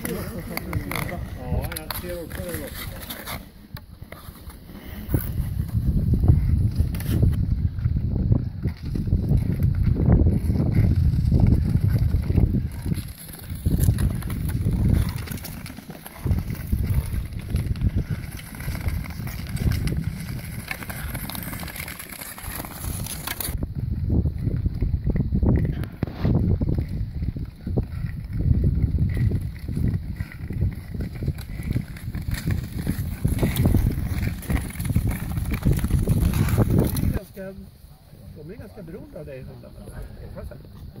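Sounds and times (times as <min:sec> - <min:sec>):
skate blades scraping on ice: 0:00.0 - 0:07.4, 0:08.6 - 0:23.6, 0:25.6 - 0:37.5.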